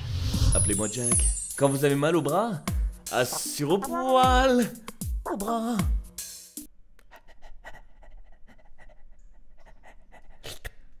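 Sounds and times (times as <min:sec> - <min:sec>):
dog panting: 0:07.2 - 0:10.4.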